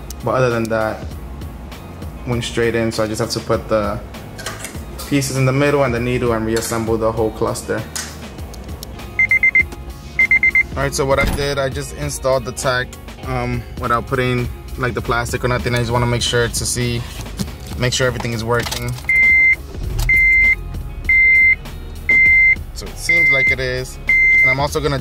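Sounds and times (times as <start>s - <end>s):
background music: 0.0s - 25.0s
car warning chime beeping: 9.1s - 10.8s, 19.1s - 24.7s.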